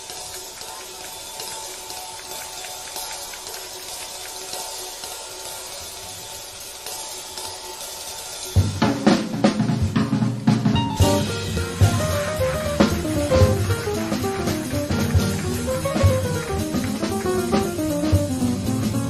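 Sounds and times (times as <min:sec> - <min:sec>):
cymbals: 0:00.0 - 0:19.0
jazz drum kit: 0:00.0 - 0:19.0
snare and bass drum hits: 0:08.6 - 0:19.0.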